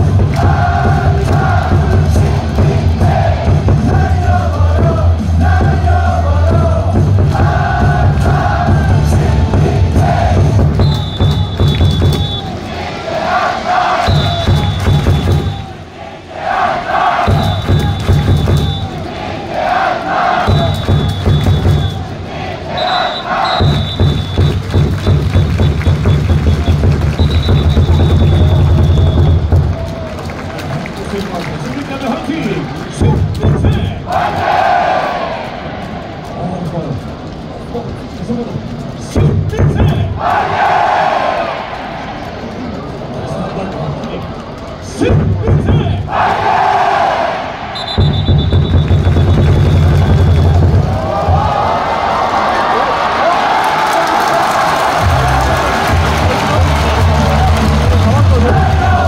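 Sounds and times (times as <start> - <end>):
cheer music with heavy bass: 0.0 - 12.4, 13.8 - 15.7, 17.2 - 18.9, 23.3 - 30.1, 48.0 - 51.7, 54.4 - 59.0
crowd noise: 0.0 - 59.0.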